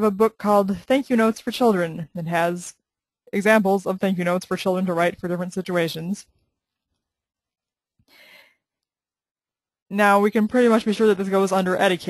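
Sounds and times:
soft breath: 0:08.0 - 0:08.8.

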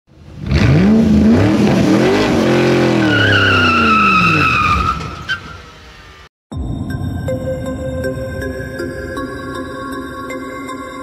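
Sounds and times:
car engine revving: 0:00.2 - 0:04.7
tyres squealing: 0:02.9 - 0:05.6.

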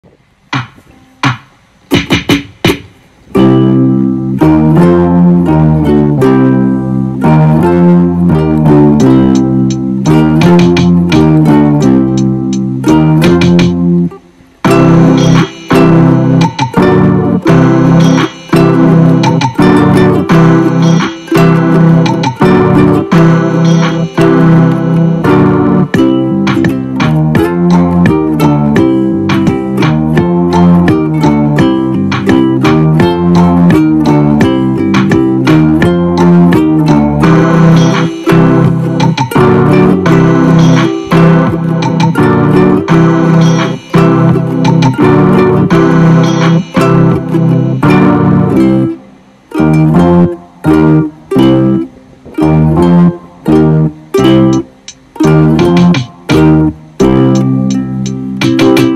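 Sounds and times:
plucked guitar notes: 0:00.5 - 0:58.9.

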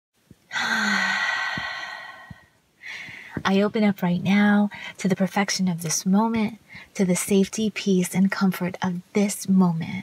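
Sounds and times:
person sighing: 0:00.5 - 0:03.3.

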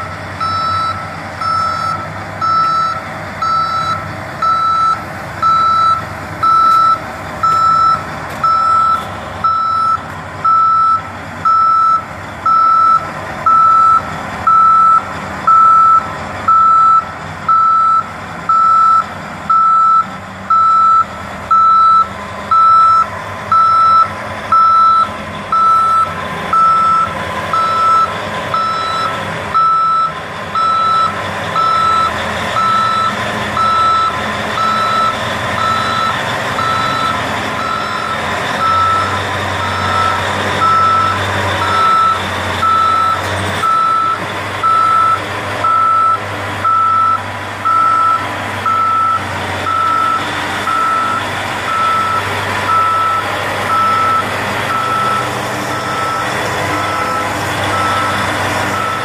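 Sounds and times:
diesel engine running: 0:00.0 - 0:59.0
backup alarm beeping: 0:00.4 - 0:59.0.

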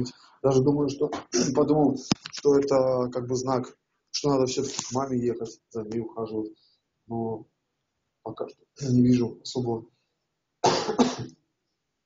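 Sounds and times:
man coughing: 0:01.1 - 0:01.6, 0:10.6 - 0:11.3.

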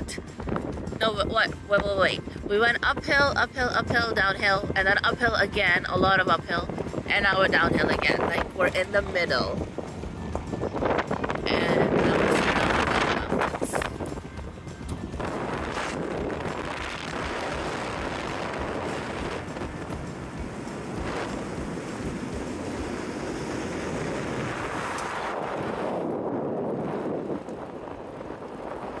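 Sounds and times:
road noise: 0:00.0 - 0:29.0
wind rushing on microphone: 0:00.0 - 0:29.0.

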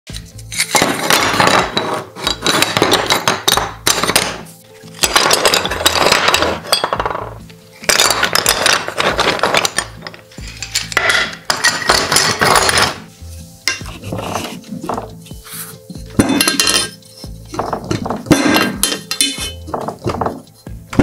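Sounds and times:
marble strips clinking: 0:00.2 - 0:21.0.

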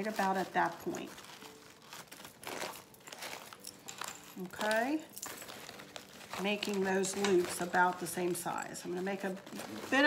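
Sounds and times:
fabric ribbon rustling: 0:00.0 - 0:10.0.

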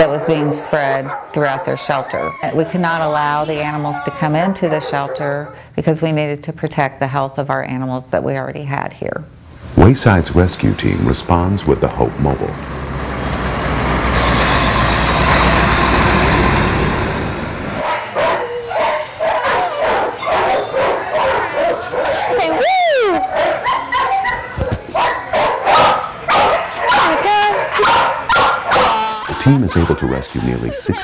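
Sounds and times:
dog yelping: 0:00.0 - 0:05.6, 0:17.8 - 0:31.0
dogs barking: 0:00.0 - 0:05.7, 0:17.7 - 0:31.0
truck engine and road noise: 0:09.7 - 0:17.8.

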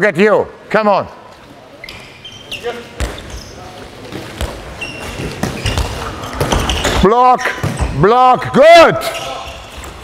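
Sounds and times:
shoe squeaks: 0:01.8 - 0:03.9, 0:04.5 - 0:07.0, 0:09.0 - 0:10.0.

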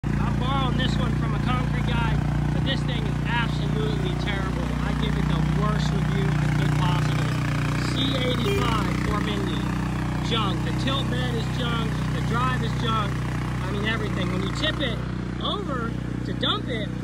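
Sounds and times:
small dumper engine running: 0:00.0 - 0:17.0
man talking: 0:00.1 - 0:17.0.

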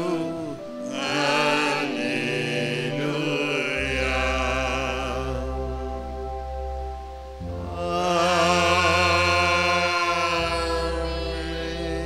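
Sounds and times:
chant-like worship singing: 0:00.0 - 0:12.0
sustained accompaniment: 0:00.0 - 0:12.0.

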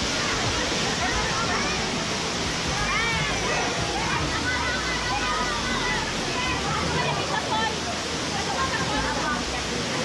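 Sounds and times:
people's voices: 0:00.0 - 0:10.0
waterfall rushing into pool: 0:00.0 - 0:10.0.

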